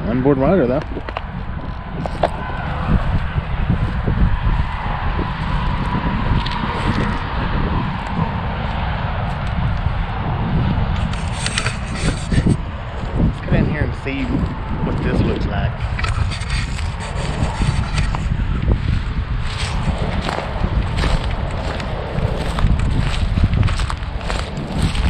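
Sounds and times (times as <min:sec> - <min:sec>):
wind rumbling on microphone: 0:00.0 - 0:25.0
footsteps crunching through dry grass: 0:00.5 - 0:25.0
crackling rustle: 0:10.9 - 0:13.2, 0:15.7 - 0:25.0.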